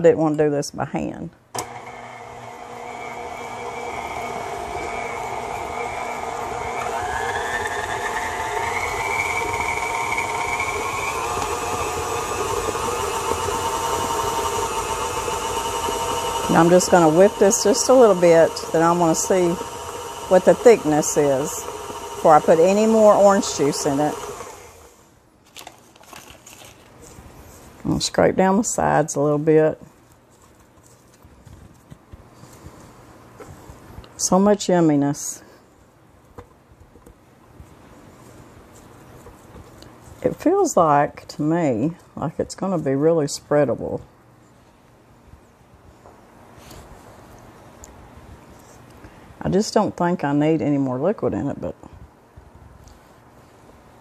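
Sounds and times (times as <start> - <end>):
stand mixer motor whine: 1.6 - 24.9.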